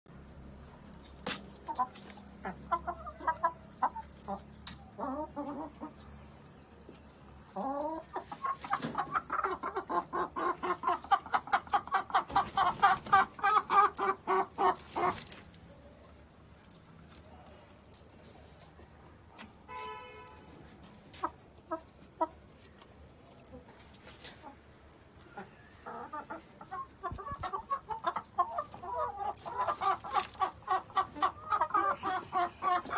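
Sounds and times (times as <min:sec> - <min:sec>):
hens clucking: 0:00.2 - 0:19.8, 0:20.8 - 0:32.9.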